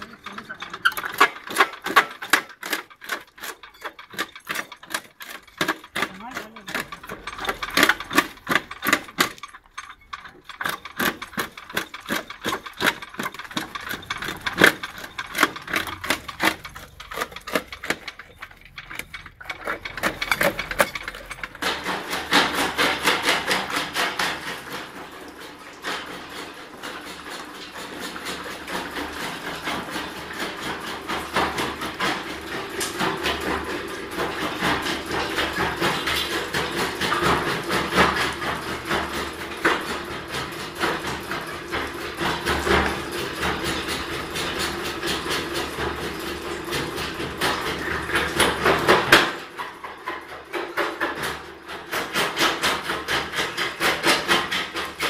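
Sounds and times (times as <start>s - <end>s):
jaw crusher crushing stone: 0.0s - 55.0s.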